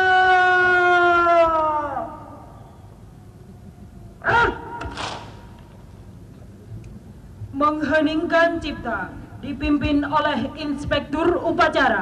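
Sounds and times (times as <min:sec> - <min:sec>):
open-air background: 0:00.0 - 0:12.0.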